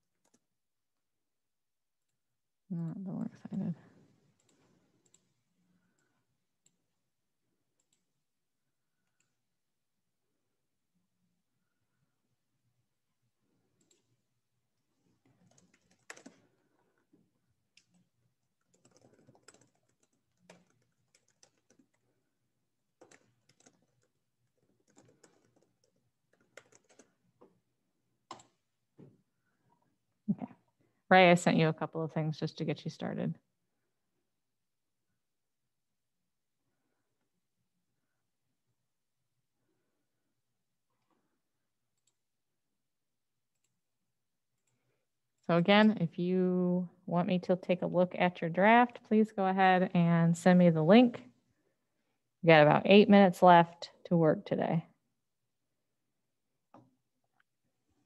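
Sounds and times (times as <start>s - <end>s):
computer keyboard typing: 0.1s - 0.5s, 15.2s - 16.8s, 17.6s - 27.4s, 28.3s - 28.6s
keyboard and mouse clicks: 0.1s - 0.5s, 15.2s - 16.5s, 28.3s - 28.6s.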